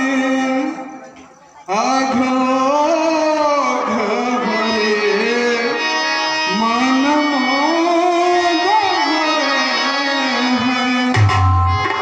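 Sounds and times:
man singing through microphone: 0.0s - 11.6s
held instrumental drone: 3.6s - 12.0s
tabla: 7.7s - 12.0s.

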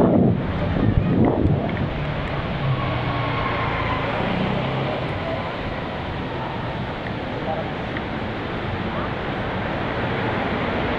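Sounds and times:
wind noise on microphone: 0.0s - 10.9s.

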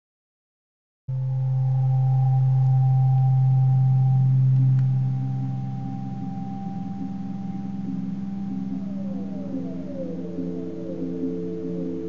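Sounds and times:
ambient drone music: 1.1s - 12.0s.

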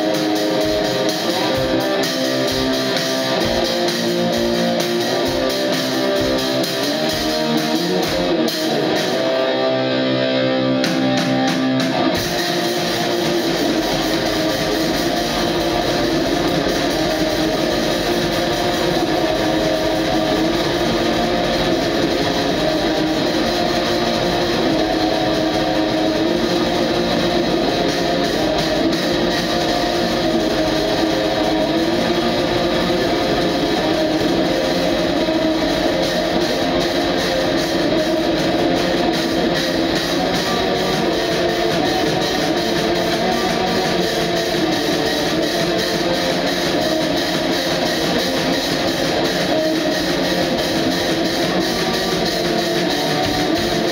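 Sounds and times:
black metal guitar and drums: 0.0s - 53.9s.

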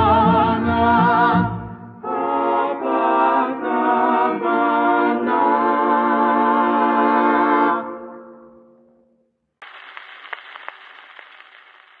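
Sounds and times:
record surface hiss and crackles: 9.6s - 12.0s.

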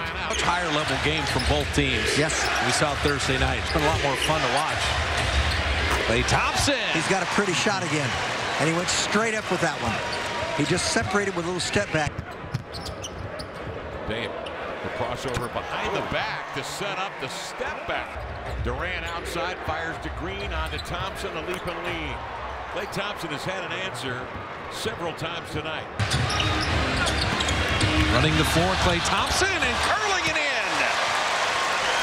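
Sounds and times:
crowd noise: 0.0s - 32.0s
crowd hubbub: 26.0s - 32.0s.

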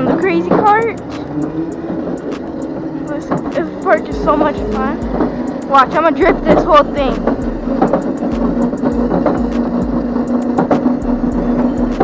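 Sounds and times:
electric kart motor whine: 0.0s - 12.0s
wheels clicking on concrete: 0.0s - 12.0s.

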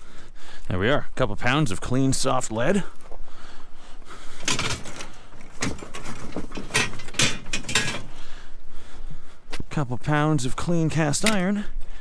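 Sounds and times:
scrap metal clanking: 4.3s - 8.3s.

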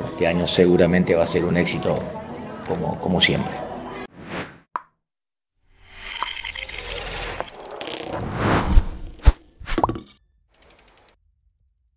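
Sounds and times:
swish with rising tone: 4.1s - 4.6s, 6.9s - 9.8s
faint rapid ticks: 10.6s - 11.2s.

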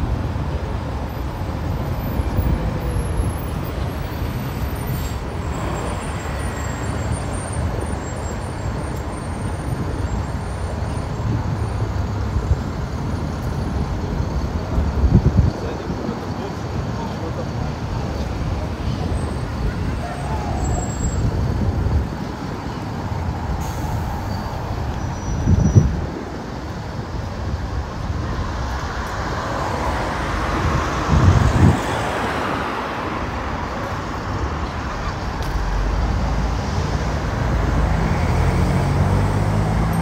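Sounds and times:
traffic rumble: 0.0s - 40.0s
vehicle passing close: 34.0s - 40.0s.

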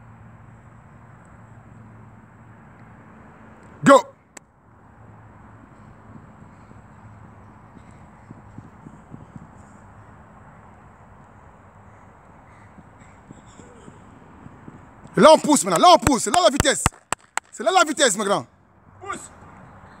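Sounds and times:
outdoor background noise: 0.0s - 20.0s.

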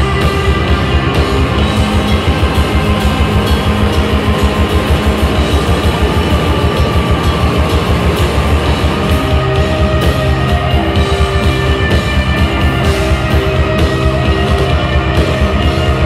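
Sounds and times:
electric bass: 0.0s - 16.0s
electric guitar: 0.0s - 16.0s
rapid drum beat: 0.0s - 16.0s.

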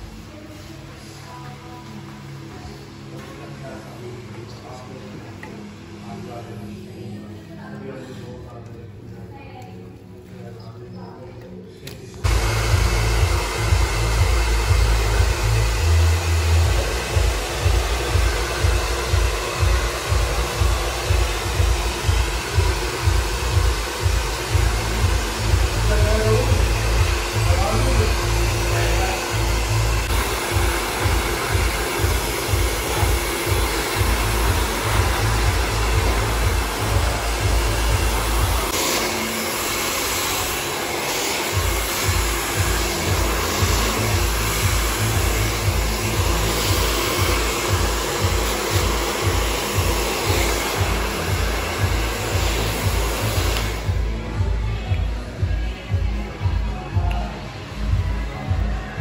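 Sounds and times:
background music with steady beat: 11.9s - 59.0s
hair dryer running: 12.2s - 55.5s.

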